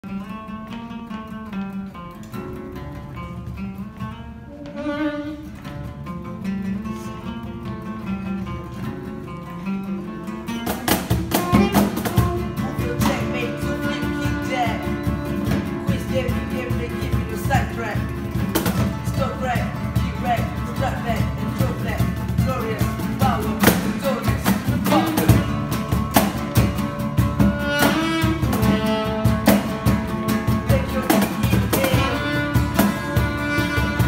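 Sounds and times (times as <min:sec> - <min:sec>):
acoustic guitars picking: 0:00.0 - 0:34.0
cajon strikes: 0:00.1 - 0:34.0.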